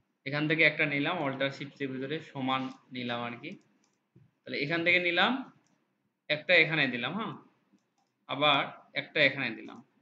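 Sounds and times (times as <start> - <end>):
person talking: 0.2 - 5.6.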